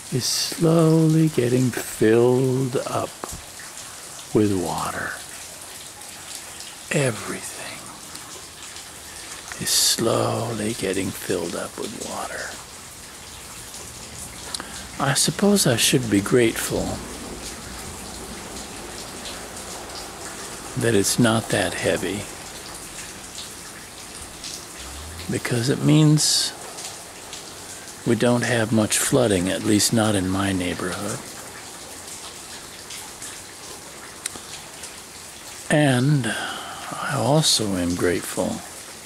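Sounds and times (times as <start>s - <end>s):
rain hiss: 0.0s - 39.0s
raindrop ticks: 0.1s - 39.0s.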